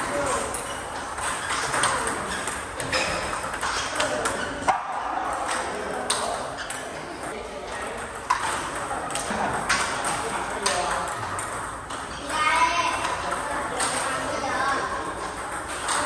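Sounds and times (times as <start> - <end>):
table tennis ball clicks: 12.9 - 14.3, 15.3 - 16.0.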